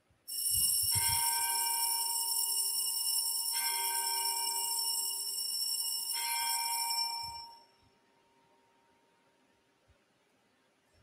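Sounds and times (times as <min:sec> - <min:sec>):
altar bell ringing: 0:00.3 - 0:07.8.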